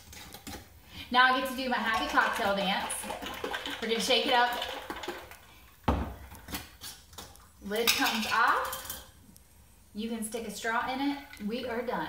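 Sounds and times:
glass jar set down on countertop: 0:05.8 - 0:06.2.

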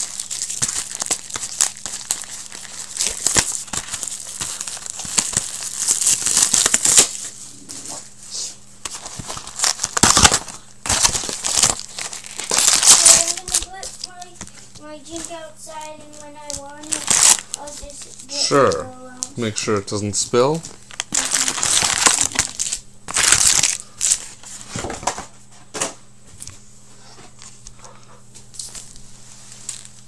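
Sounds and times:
foil wrappers crinkling: 0:00.0 - 0:08.2, 0:08.8 - 0:19.7, 0:20.5 - 0:25.2, 0:28.5 - 0:30.0.

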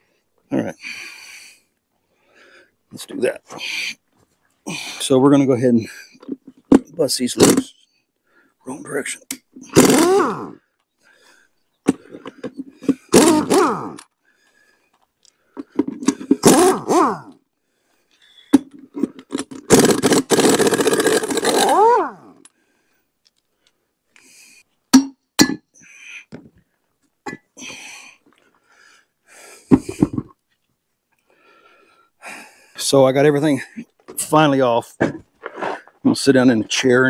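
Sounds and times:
pneumatic impact wrench hammering: 0:07.4 - 0:07.7, 0:09.6 - 0:10.6, 0:11.9 - 0:14.1, 0:15.9 - 0:17.4, 0:19.3 - 0:22.5.

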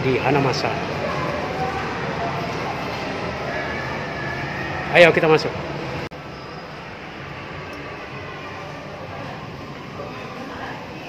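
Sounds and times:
shopping mall hum: 0:00.0 - 0:11.0.

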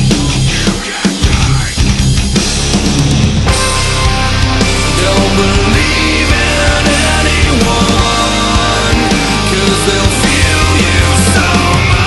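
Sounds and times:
hard rock music: 0:00.0 - 0:12.0.

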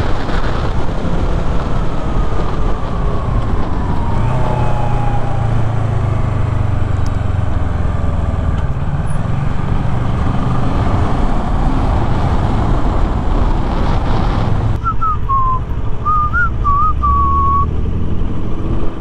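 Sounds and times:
wind rush: 0:00.0 - 0:19.0
person whistling a tune: 0:14.8 - 0:17.7.

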